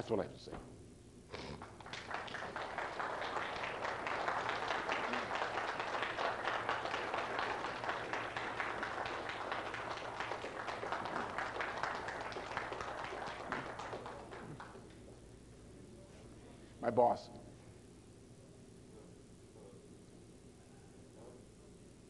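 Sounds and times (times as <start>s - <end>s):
audience applauding: 1.5s - 15.2s.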